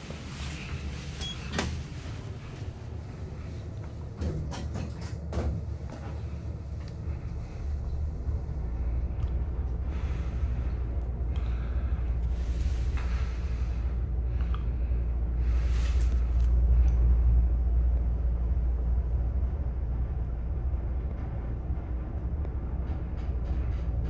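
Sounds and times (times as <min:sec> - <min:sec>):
elevator rumble: 0:00.0 - 0:24.0.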